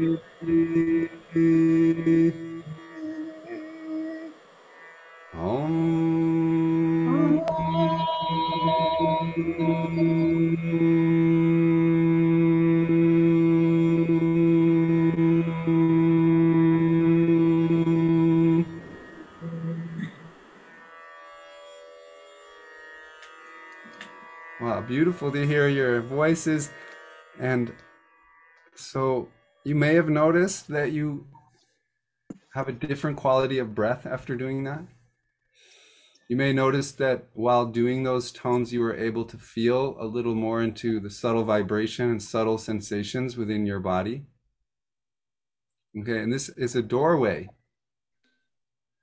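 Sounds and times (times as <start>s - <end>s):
voice sliding up into pitch: 0.0s - 4.5s, 5.4s - 20.4s.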